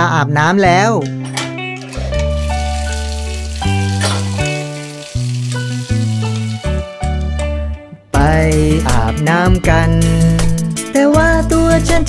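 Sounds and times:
instrumental children's song: 0.7s - 12.0s
shower water spraying: 2.1s - 7.1s.

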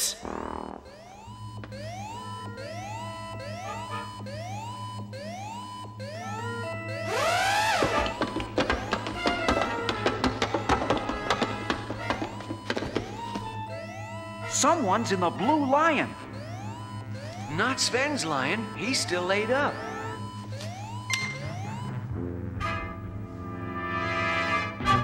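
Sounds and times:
rising alarm whoop: 0.6s - 9.1s, 12.0s - 22.0s.

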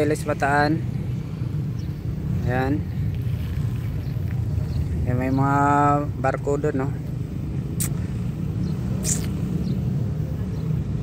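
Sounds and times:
low outdoor rumble: 0.0s - 11.0s
brief hissing: 9.0s - 9.4s.

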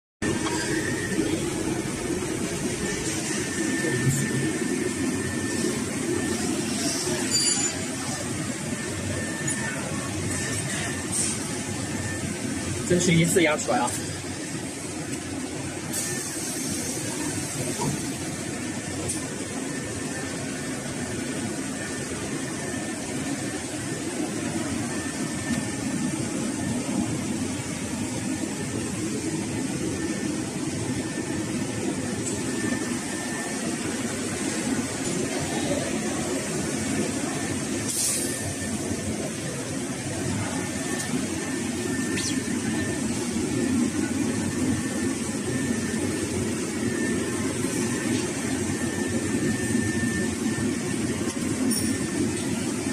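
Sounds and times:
thin high whine: 0.2s - 52.9s
welding machine low hum: 0.2s - 52.9s.

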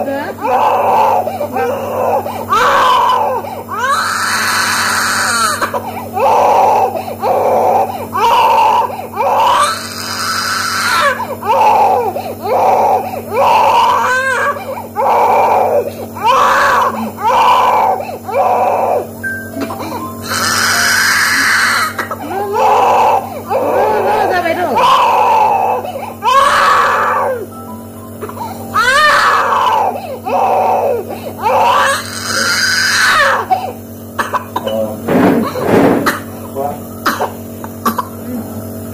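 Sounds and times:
infant crying: 0.4s - 19.1s, 19.7s - 27.5s, 28.2s - 33.8s
infant screaming: 0.4s - 19.1s, 20.3s - 27.5s, 28.8s - 33.7s.

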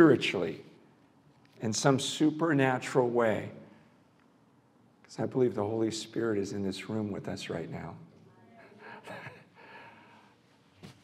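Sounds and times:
man laughing quietly: 8.7s - 10.1s.

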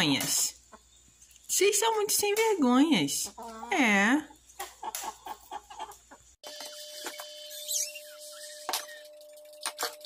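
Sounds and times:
chickens clucking: 0.0s - 7.3s
high gliding chirp: 6.4s - 10.0s.

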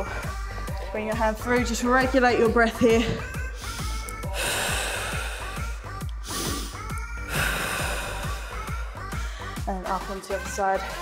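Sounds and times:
background music with steady beat: 0.0s - 11.0s
long breaths out: 3.6s - 9.6s.

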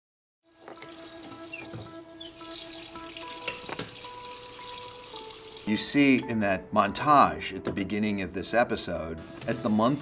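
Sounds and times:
soft music with held notes: 0.5s - 10.0s
running tap hissing: 0.6s - 5.8s.

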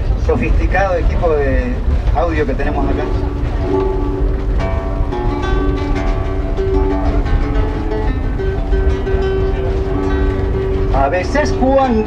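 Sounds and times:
acoustic guitar picking: 0.0s - 12.0s
train carriage rumble: 0.0s - 12.0s.

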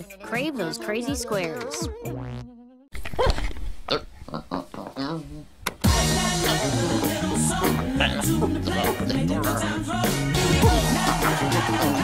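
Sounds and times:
squeaky grunting cartoon voices: 6.4s - 9.8s.

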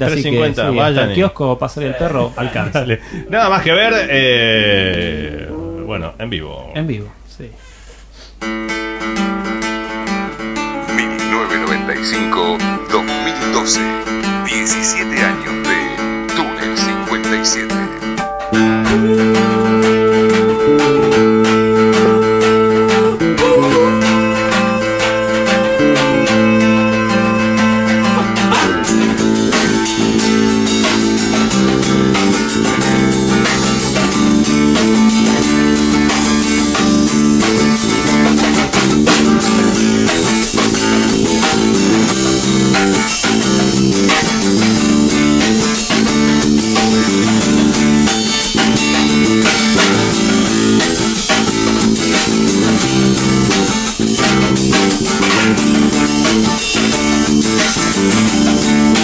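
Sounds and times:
acoustic guitar strumming: 8.4s - 59.0s
electric bass line: 10.4s - 59.0s.

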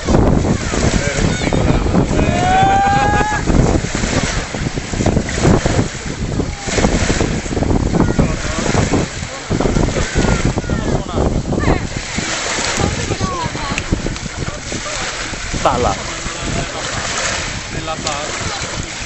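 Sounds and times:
choppy sea water washing: 0.0s - 19.0s
wind buffeting microphone: 0.0s - 19.0s.

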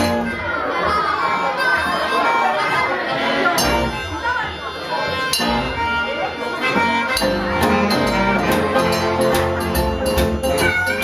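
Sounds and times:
resonator guitar: 0.0s - 0.4s, 3.5s - 4.1s, 5.1s - 11.0s
harmonica: 0.0s - 11.0s
percussive beat: 6.6s - 11.0s.

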